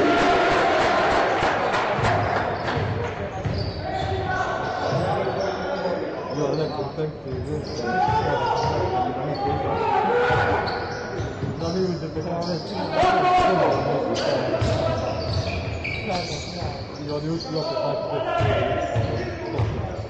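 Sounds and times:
sneakers squeaking: 2.0s - 20.0s.

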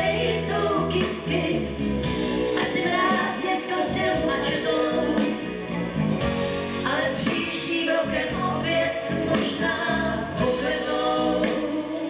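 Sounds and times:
woman singing into microphone: 0.0s - 1.8s, 2.5s - 5.6s, 6.8s - 12.0s
backing band playing: 0.0s - 12.0s.

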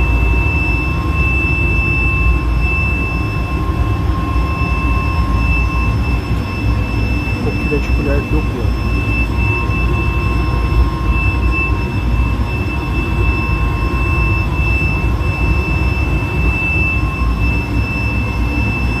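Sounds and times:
high-pitched machine whine: 0.0s - 19.0s
machine low rumble: 0.0s - 19.0s.

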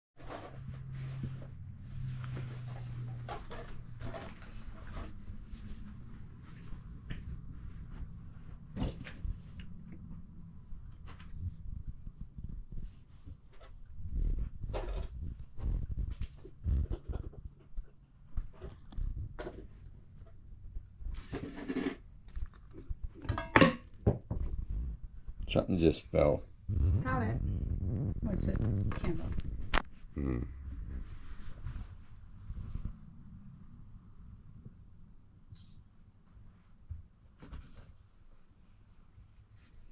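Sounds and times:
cat purring: 24.3s - 33.8s.

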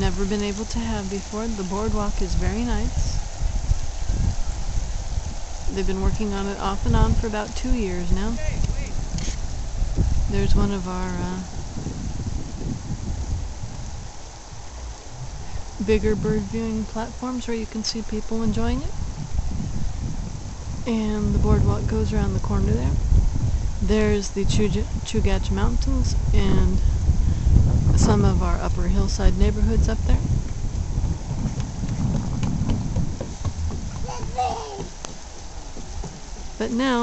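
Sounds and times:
faint steady hiss: 0.0s - 31.7s
wind buffeting microphone: 0.0s - 37.0s.

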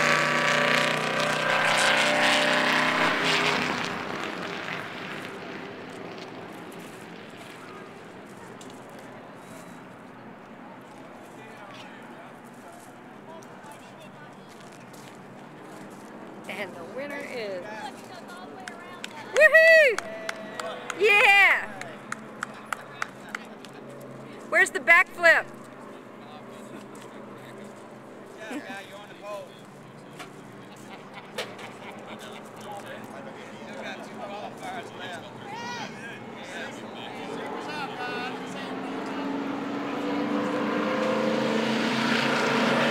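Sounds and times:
race car engines running: 0.0s - 19.3s, 20.1s - 42.9s.

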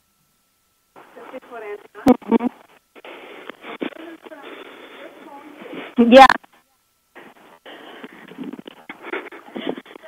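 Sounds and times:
muffled voices through telephone: 1.0s - 10.0s.

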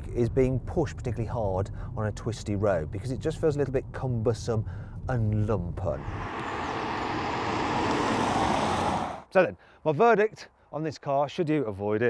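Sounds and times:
car driving past: 6.0s - 9.3s.

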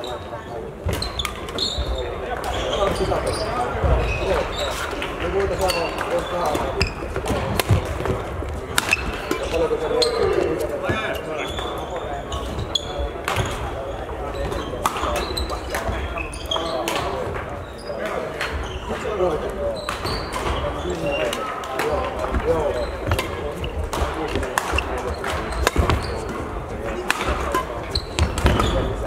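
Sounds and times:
rackets striking shuttlecocks: 4.9s - 9.7s, 19.8s - 29.0s.

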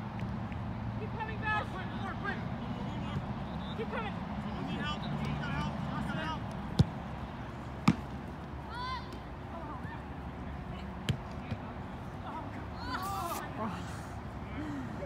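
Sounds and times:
players shouting calls: 1.0s - 10.8s
soccer ball kicks: 6.5s - 7.1s, 7.8s - 8.2s, 11.0s - 11.7s.

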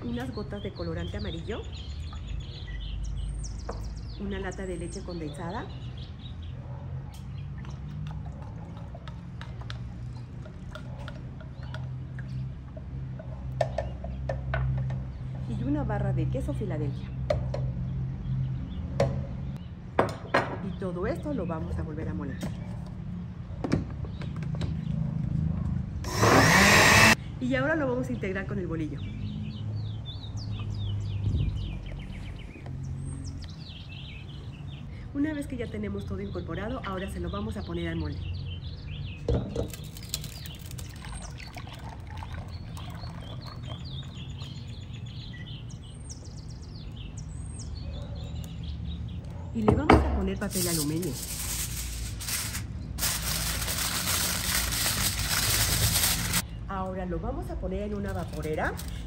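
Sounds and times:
small birds chirping: 0.0s - 12.7s, 28.1s - 56.7s.

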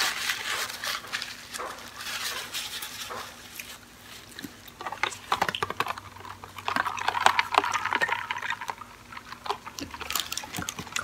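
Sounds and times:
ice lid and straw rattling: 4.8s - 11.0s.

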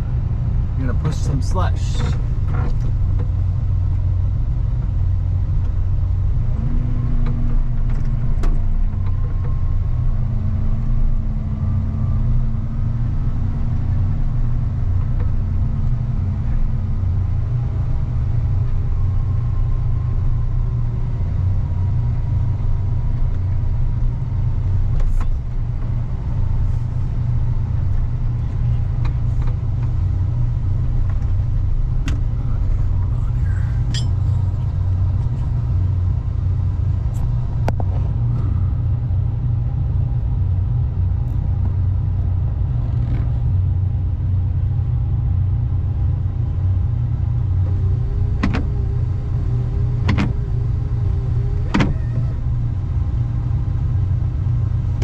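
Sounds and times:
engine rumbling under load: 0.0s - 55.0s
humming tone: 33.4s - 39.7s, 47.2s - 54.1s.

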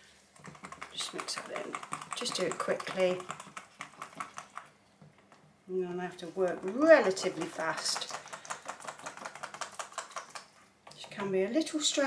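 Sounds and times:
wire whisk clicking in plastic jug: 0.4s - 4.7s, 6.2s - 11.7s.

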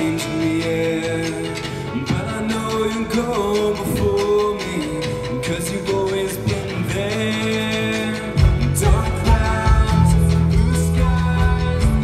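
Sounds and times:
live band with guitar: 0.0s - 12.0s
man singing: 0.0s - 12.0s.

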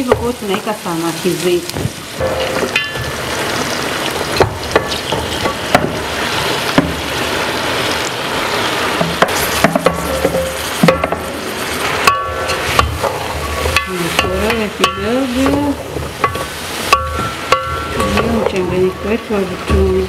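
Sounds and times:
food sizzling in a pot: 0.0s - 20.0s
spatula knocking and scraping: 12.0s - 18.6s.

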